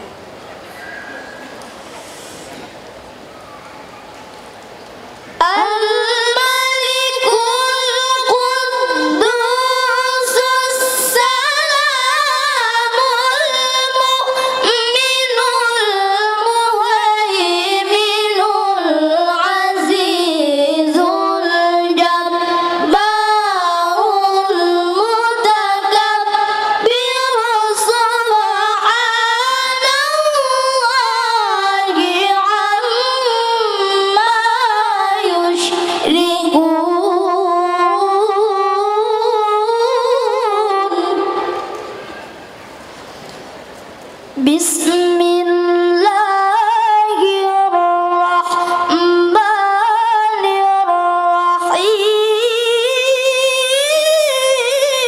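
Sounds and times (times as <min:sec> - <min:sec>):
boy reciting melodically into microphone: 0:05.1 - 0:42.4, 0:44.3 - 0:55.0.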